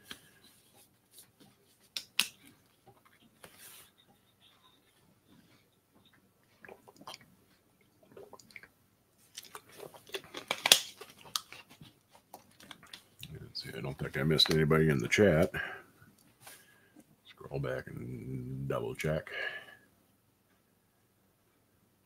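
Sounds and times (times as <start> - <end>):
person gulping: 6.6 - 7.3, 8.0 - 8.8
plastic bottle crinkling: 9.3 - 13.3.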